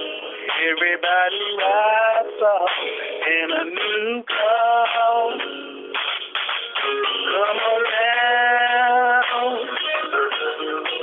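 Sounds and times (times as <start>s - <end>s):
man singing over telephone: 0.0s - 5.8s, 7.2s - 10.4s.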